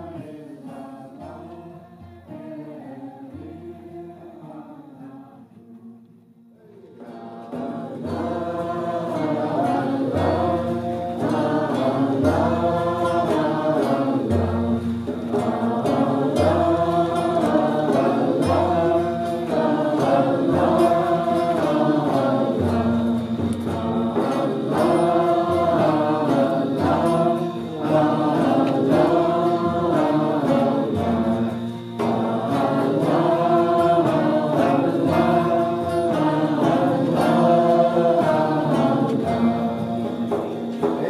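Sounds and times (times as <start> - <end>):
group chanting: 0.0 - 6.0, 6.6 - 41.0.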